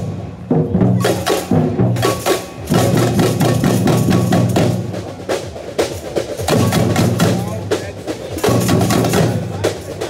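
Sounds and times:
samba percussion drumming: 0.0 - 10.0.

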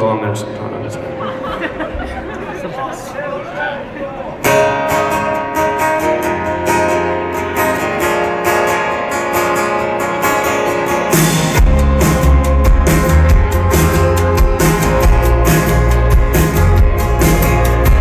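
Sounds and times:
acoustic guitar strumming: 4.4 - 18.0
drum kit and bass: 11.1 - 18.0.

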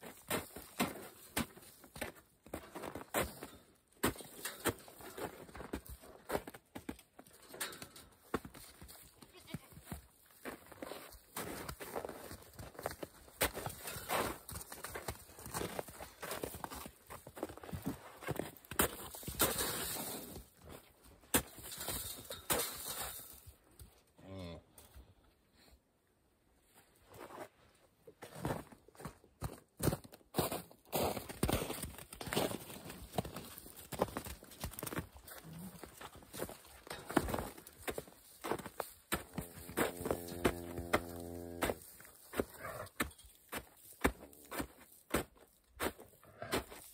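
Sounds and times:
cattle footsteps and knocks: 0.2 - 9.2, 9.8 - 23.9, 31.2 - 46.0.

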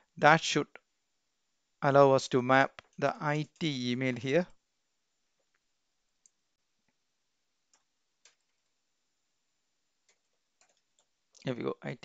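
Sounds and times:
faint keyboard clicks: 7.6 - 8.8, 10.0 - 11.5.

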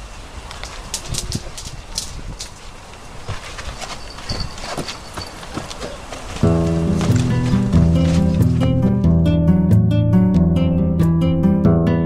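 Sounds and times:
music with sustained notes: 6.4 - 12.0.

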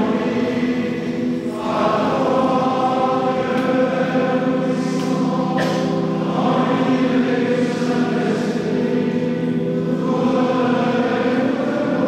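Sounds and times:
church choir singing: 0.0 - 12.0.

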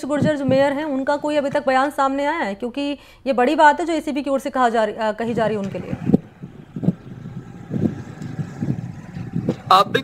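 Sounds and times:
rumble of street traffic: 5.1 - 10.0.

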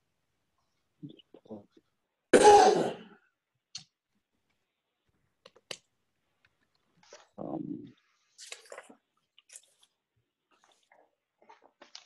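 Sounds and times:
loud cough: 2.3 - 3.2.

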